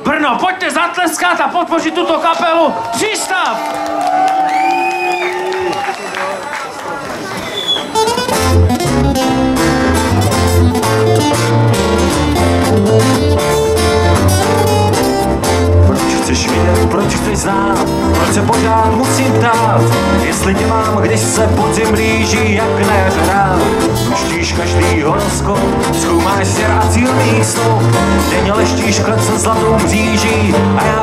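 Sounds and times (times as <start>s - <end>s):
crowd noise: 0.0s - 31.0s
acoustic band playing: 7.3s - 31.0s.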